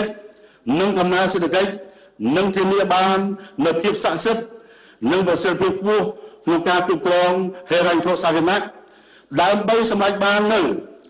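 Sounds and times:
man speaking into a microphone: 0.0s - 11.0s.

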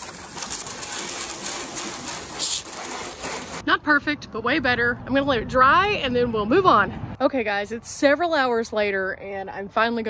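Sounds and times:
water spraying on metal roof: 0.0s - 3.6s.

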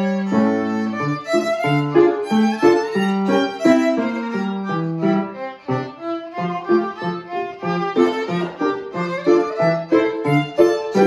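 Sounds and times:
piano accompaniment: 0.0s - 11.0s
violin solo: 0.0s - 11.0s.

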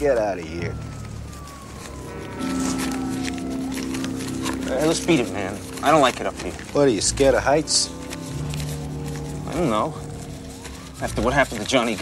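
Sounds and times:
tone sliding down in pitch: 0.0s - 6.8s, 7.9s - 12.0s.

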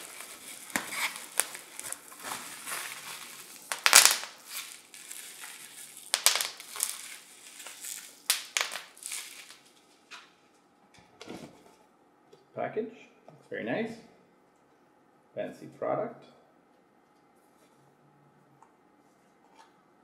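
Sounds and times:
bubble wrap crinkling: 0.0s - 10.6s.

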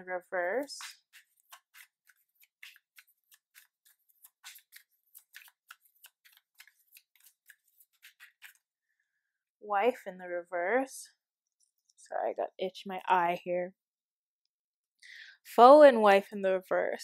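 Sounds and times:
cards being shuffled: 0.8s - 8.7s.

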